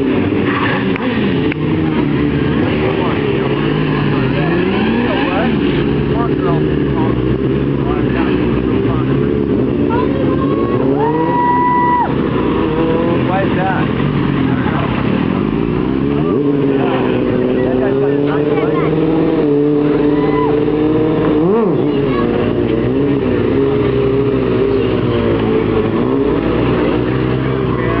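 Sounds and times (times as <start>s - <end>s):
motorcycle engines revving: 0.0s - 28.0s.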